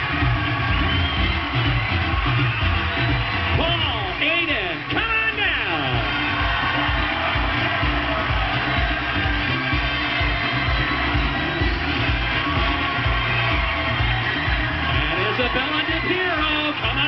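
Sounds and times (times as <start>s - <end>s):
studio audience cheering: 0.0s - 17.0s
upbeat game show music: 0.0s - 17.0s.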